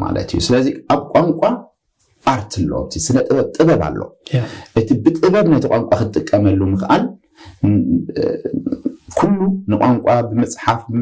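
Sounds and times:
man speaking in a low voice: 0.0s - 11.0s.

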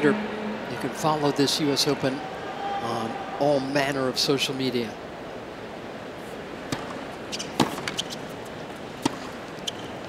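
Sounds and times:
tennis ball hit by racket: 6.7s - 8.3s, 9.0s - 9.4s.

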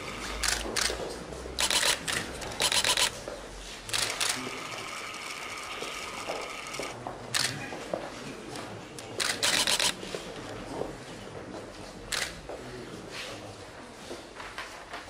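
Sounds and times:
camera shutter firing: 1.6s - 3.2s, 9.2s - 10.0s.

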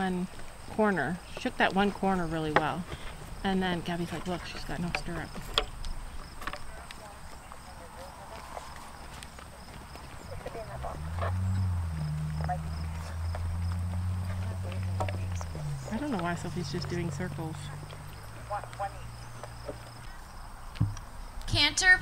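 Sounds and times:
voices in background: 0.0s - 20.4s
hoofbeats on sand: 6.1s - 20.1s.

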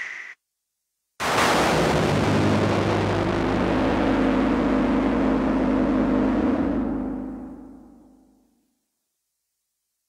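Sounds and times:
sustained low synthesizer notes: 3.5s - 8.3s.

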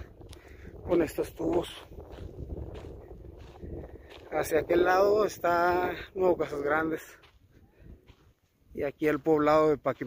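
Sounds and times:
footsteps on dirt path: 0.0s - 10.0s
wind buffeting microphone: 0.0s - 10.0s.

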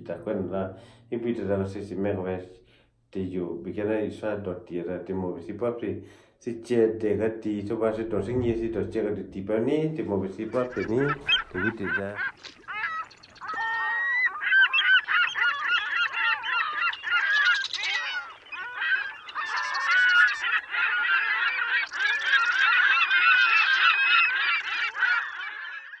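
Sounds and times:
flock of birds calling: 10.4s - 26.0s.

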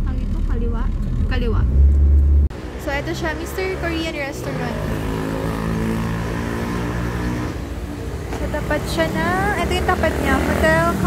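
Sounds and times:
vehicle engine running: 0.0s - 5.7s, 6.8s - 11.0s.

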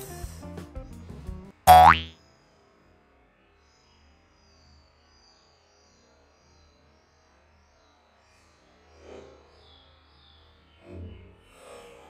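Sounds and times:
upward pitch sweep: 1.7s - 2.1s.

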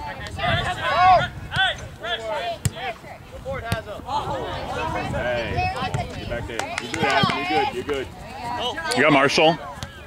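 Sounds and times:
players shouting: 0.1s - 2.9s
soccer ball kicks: 5.8s - 8.0s, 9.7s - 10.0s.

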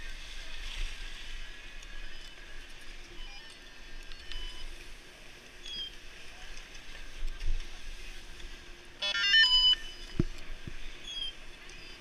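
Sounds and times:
outdoor background noise: 0.0s - 12.0s
short high electronic beeps: 9.0s - 10.0s.

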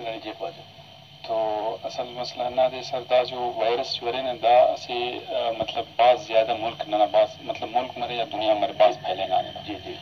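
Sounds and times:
person talking on broadcast: 1.2s - 10.0s.

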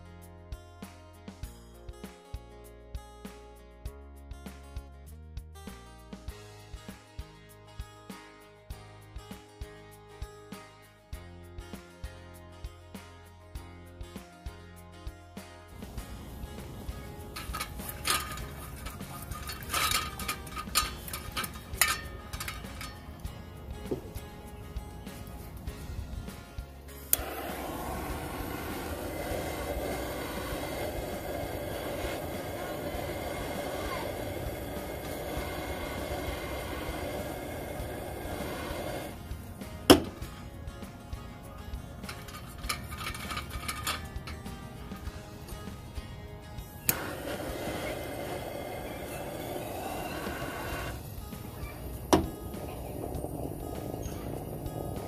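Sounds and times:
music: 0.0s - 55.0s
butane torch hissing: 15.8s - 40.4s, 46.9s - 55.0s
metal clinks of handling: 15.9s - 25.6s, 41.4s - 44.7s.

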